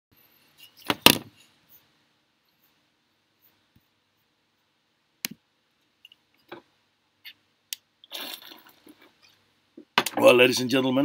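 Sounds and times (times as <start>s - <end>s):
sharp knocks with rattle: 0.8s - 1.4s.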